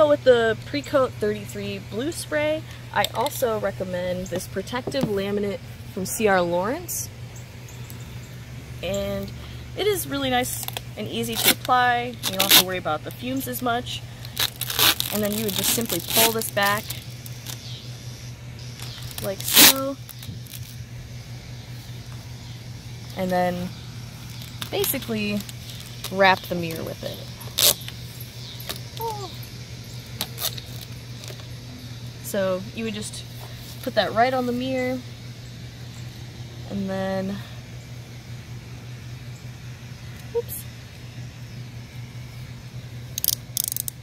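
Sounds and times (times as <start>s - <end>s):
steady low hum: 0.0s - 44.0s
plastic film rustling and crinkling: 14.2s - 17.6s, 18.8s - 20.8s, 24.2s - 27.9s
utility knife blade ratcheting clicks: 43.2s - 44.0s.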